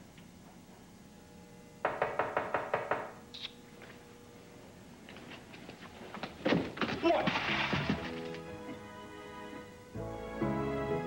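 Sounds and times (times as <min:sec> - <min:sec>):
rapid knocking on a door: 0:01.8 - 0:03.2.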